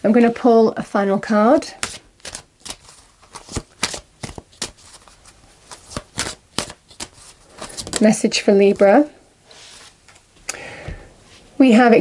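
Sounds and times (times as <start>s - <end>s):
cards being shuffled by hand: 1.8s - 8.9s.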